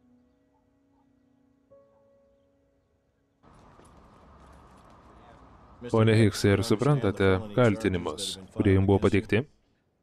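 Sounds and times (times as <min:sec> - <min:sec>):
man speaking: 0:05.8 - 0:09.5.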